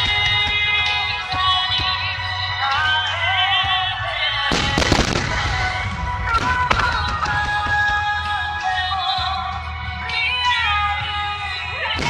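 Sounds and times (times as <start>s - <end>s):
music with singing over loudspeakers: 0.0s - 12.0s
firework shells bursting: 4.5s - 8.2s.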